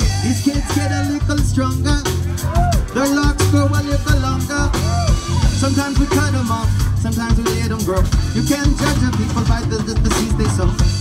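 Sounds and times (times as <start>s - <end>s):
live band playing: 0.0s - 11.0s.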